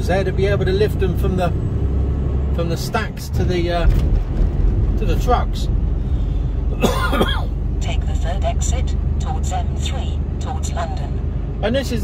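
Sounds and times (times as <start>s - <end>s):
lorry cab drone: 0.0s - 12.0s
man coughing: 6.7s - 7.6s.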